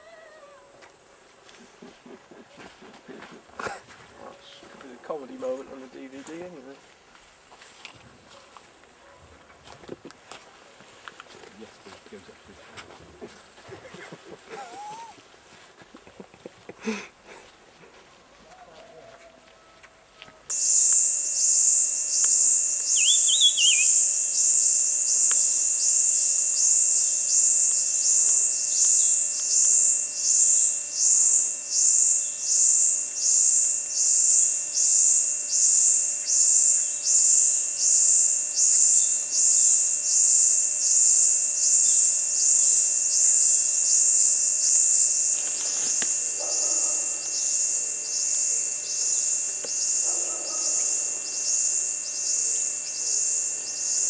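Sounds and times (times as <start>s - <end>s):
warbling bird call: 14.5s - 15.2s, 22.8s - 24.1s
high-pitched insect song pulsing: 20.5s - 54.0s.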